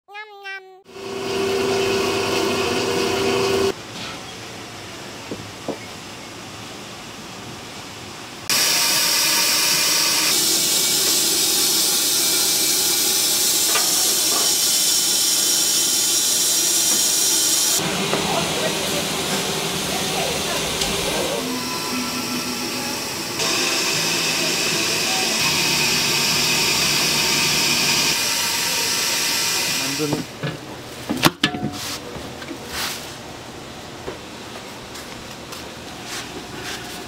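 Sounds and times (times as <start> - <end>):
steam hissing: 8.5 - 30.3.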